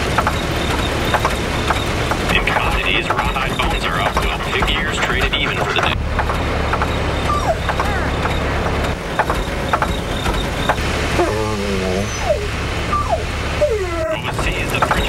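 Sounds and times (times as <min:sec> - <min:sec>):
bus engine rumbling: 0:00.0 - 0:15.0
short falling squeaks: 0:06.3 - 0:10.8
wavering voice-like call: 0:07.2 - 0:08.8, 0:11.1 - 0:15.0.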